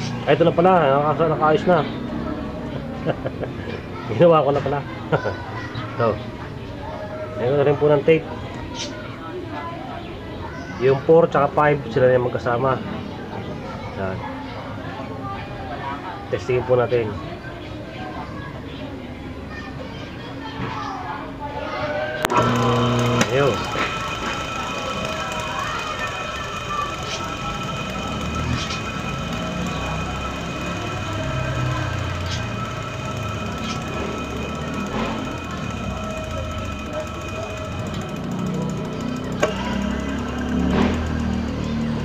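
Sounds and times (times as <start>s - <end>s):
electric motor click: 22.2s - 42.0s
electric motor humming and whining: 22.3s - 42.0s.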